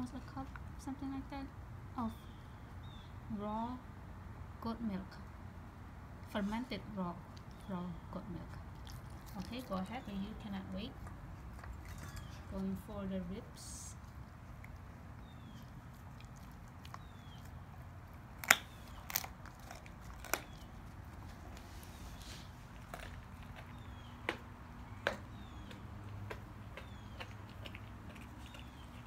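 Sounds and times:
dog chewing bones: 0:08.6 - 0:10.2, 0:10.9 - 0:12.5, 0:14.0 - 0:29.0
bones cracking: 0:16.0 - 0:21.7.

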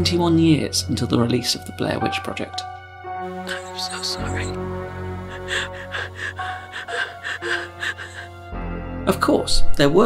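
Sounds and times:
woman crying: 0:03.4 - 0:08.6.

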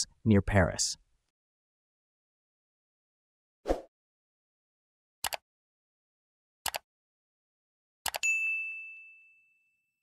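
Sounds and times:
bright bell ding: 0:08.2 - 0:09.9.

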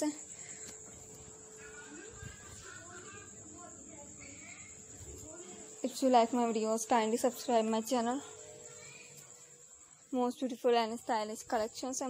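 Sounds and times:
woman's voice: 0:00.0 - 0:00.2, 0:05.2 - 0:08.3, 0:10.1 - 0:12.0
thin high whine: 0:00.0 - 0:12.0.

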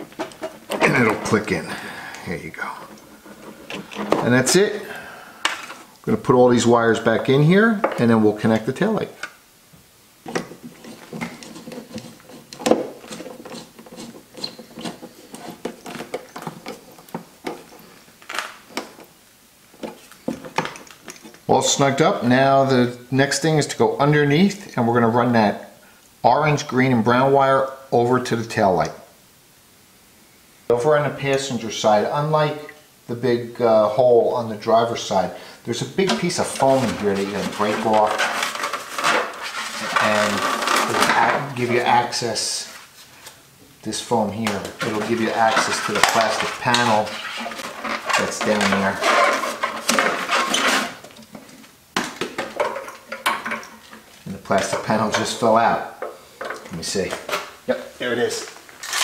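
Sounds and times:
wiring rustling: 0:00.0 - 0:22.0, 0:34.6 - 0:59.0.

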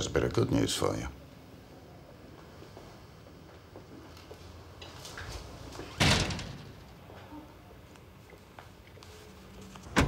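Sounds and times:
wooden door slamming: 0:06.0 - 0:06.8.

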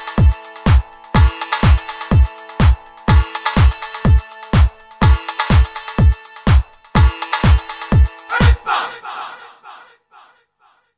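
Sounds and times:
electronic dance track: 0:00.0 - 0:10.0
echoing vocal sample: 0:08.3 - 0:10.8.

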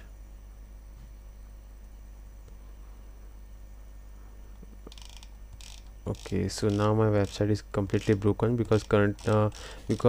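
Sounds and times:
steady low hum: 0:00.0 - 0:10.0
mouse scroll wheel clicking: 0:04.9 - 0:10.0.

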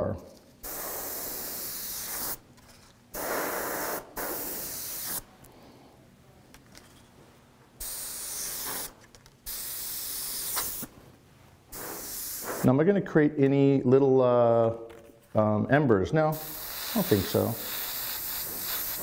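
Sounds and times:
airbrush spraying hiss: 0:00.6 - 0:02.4, 0:03.1 - 0:05.3, 0:07.8 - 0:10.9, 0:11.7 - 0:12.7, 0:16.3 - 0:19.0.

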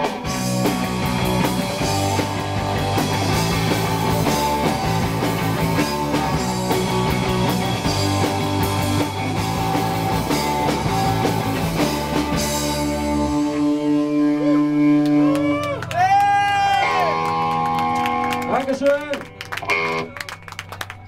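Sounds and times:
electric guitar notes ringing: 0:00.0 - 0:21.0
live rock band playing: 0:00.0 - 0:21.0.

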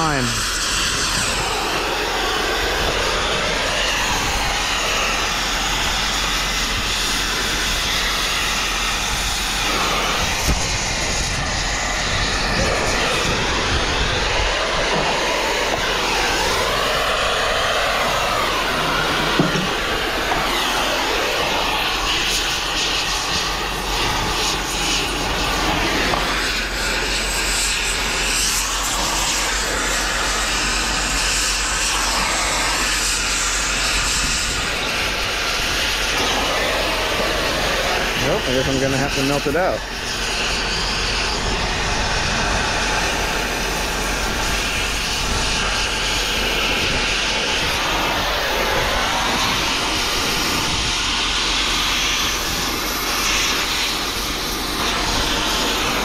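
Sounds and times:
gas torch hissing: 0:00.0 - 0:56.0.

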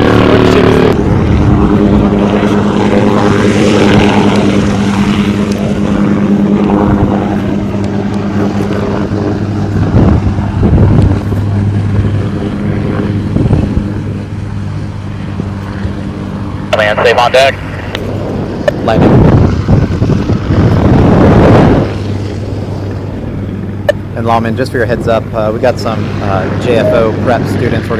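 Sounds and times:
helicopter rotor and turbine hum: 0:00.0 - 0:27.9.

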